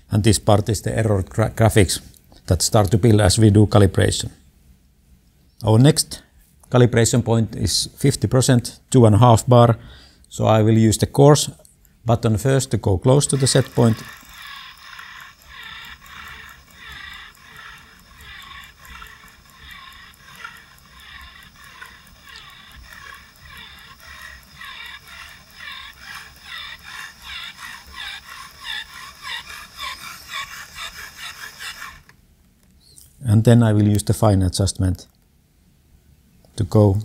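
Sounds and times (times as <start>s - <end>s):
electric pressure pump strokes: 13.1s - 32.1s.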